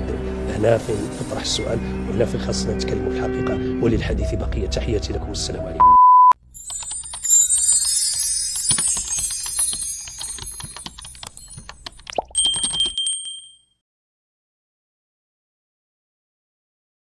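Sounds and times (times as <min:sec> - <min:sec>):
twinkling chimes and jingles: 0:06.4 - 0:13.8
bell-like ding: 0:12.4 - 0:13.8.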